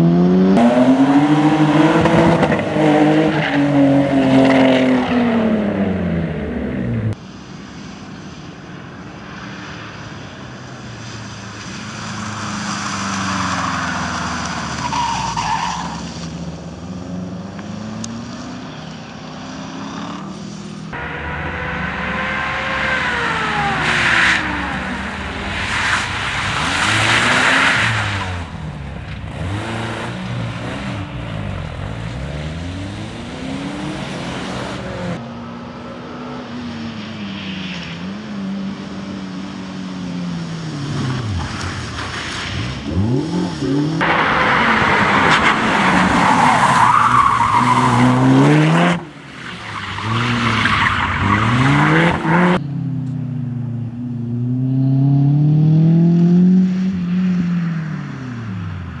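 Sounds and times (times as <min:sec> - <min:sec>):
rally car engines revving: 0:00.0 - 0:07.2, 0:09.3 - 0:59.0
tyres skidding: 0:00.0 - 0:59.0.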